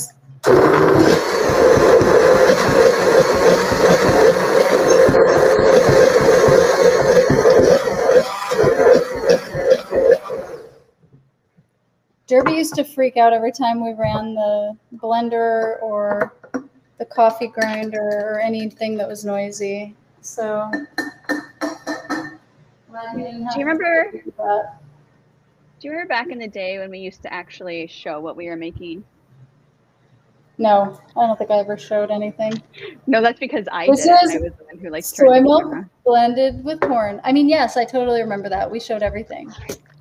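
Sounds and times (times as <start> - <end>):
blender running: 0.4 - 10.8.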